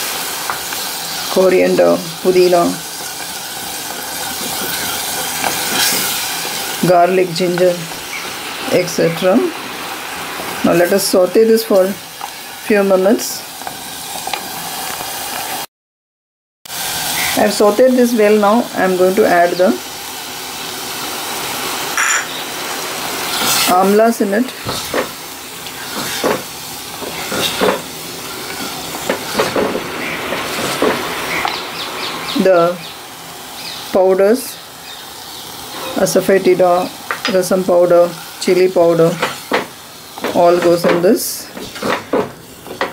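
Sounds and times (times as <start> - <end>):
paste sizzling in hot oil: 0.0 - 15.7, 16.7 - 42.9
wooden spatula scraping pot: 4.2 - 6.6, 23.3 - 23.8.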